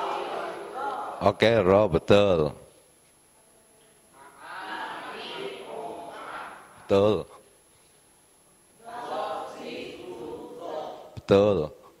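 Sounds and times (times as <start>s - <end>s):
audience calling out in chorus: 0.0s - 1.2s.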